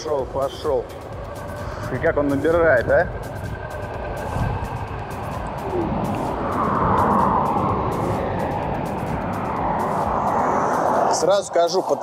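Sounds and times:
background music: 0.0s - 12.0s
wind and road noise: 0.0s - 12.0s.

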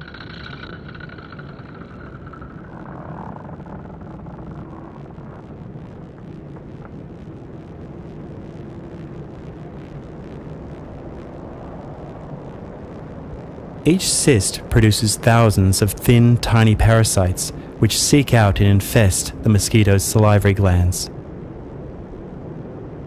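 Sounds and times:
low ambient drone: 0.0s - 23.0s.

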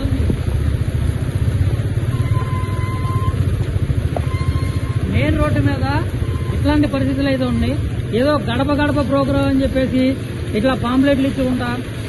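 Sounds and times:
rainstorm: 0.0s - 12.0s.

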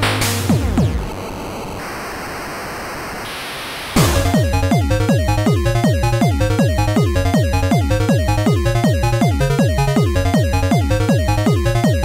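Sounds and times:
chiptune track with beat: 0.0s - 1.3s, 4.0s - 12.0s.

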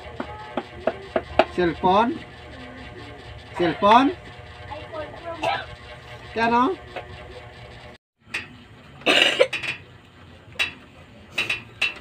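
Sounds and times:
person coughing loudly: 5.4s - 5.8s, 9.1s - 9.5s.

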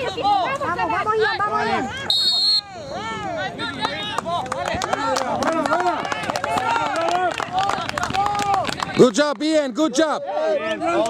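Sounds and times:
voices shouting over one another: 10.0s - 11.0s.

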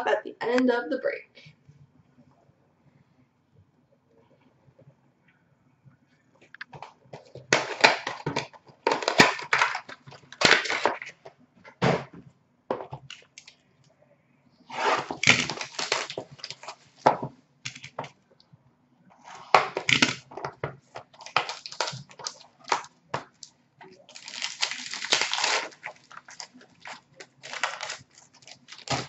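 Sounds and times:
plastic wrap crinkling: 6.7s - 11.2s, 14.7s - 18.1s, 19.4s - 29.0s.

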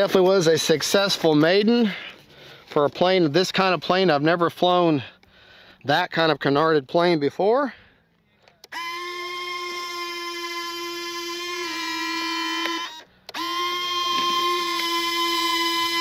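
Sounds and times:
landing gear motor whine: 8.7s - 16.0s.

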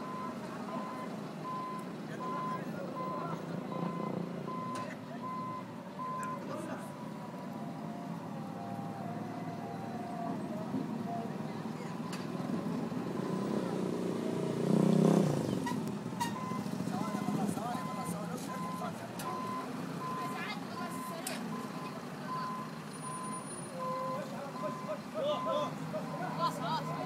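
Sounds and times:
diesel engine running: 0.0s - 27.0s.

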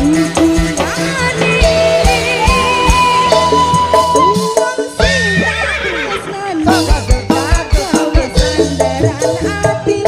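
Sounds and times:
band music with sliding melody: 0.0s - 10.0s
quick drum beats: 6.4s - 10.0s.

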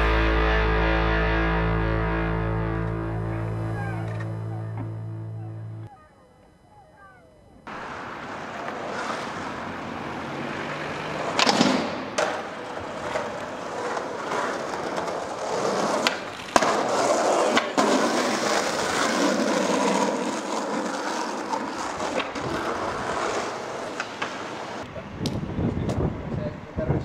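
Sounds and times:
skateboard wheels rolling on asphalt: 7.7s - 27.0s
skateboard knocking on ground: 11.3s - 24.8s.

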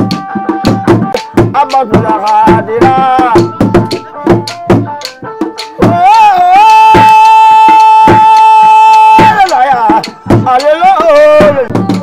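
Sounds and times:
sharp drum strikes: 0.0s - 6.2s, 6.8s - 12.0s.

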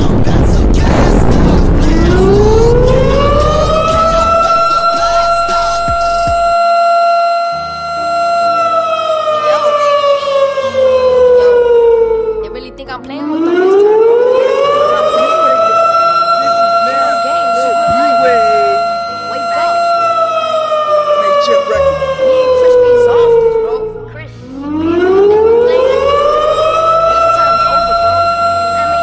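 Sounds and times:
low stepping bass notes: 0.0s - 6.6s, 11.0s - 29.0s
wailing siren tone: 0.0s - 29.0s.

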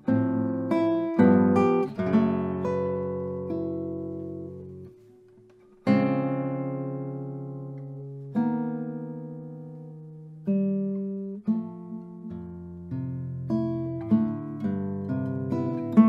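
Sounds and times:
classical guitar chords: 0.0s - 16.0s.

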